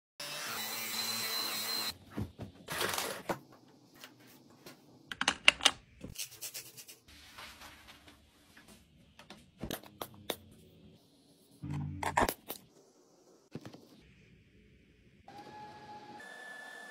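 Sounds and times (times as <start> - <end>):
vacuum cleaner whirring: 15.3 - 16.9.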